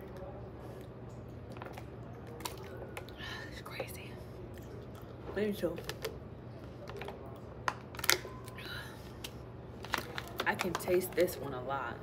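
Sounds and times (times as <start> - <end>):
plastic bottle crackling: 6.8 - 8.4, 9.8 - 11.3.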